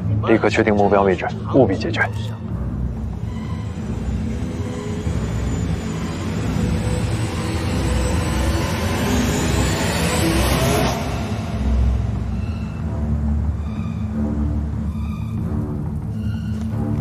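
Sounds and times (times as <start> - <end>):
low rumbling drone: 0.0 - 17.0.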